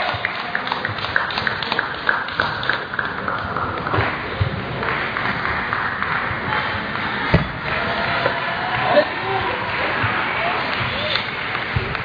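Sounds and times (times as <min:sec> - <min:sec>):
murmur of voices: 0:04.2 - 0:12.0.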